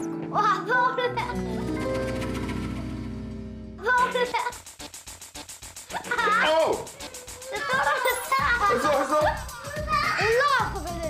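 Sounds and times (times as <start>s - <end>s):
background music: 0.0s - 11.0s
children's excited voices: 7.0s - 11.0s.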